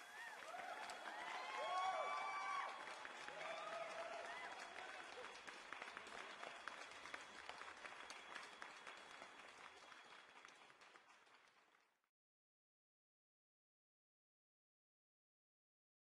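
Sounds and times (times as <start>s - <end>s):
sparse applause: 0.0s - 11.9s.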